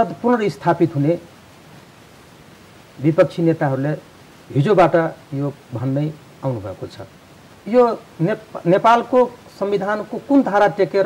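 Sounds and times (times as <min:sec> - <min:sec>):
man speaking: 0:00.0 - 0:01.3, 0:03.0 - 0:11.0
faint hiss: 0:00.0 - 0:11.0.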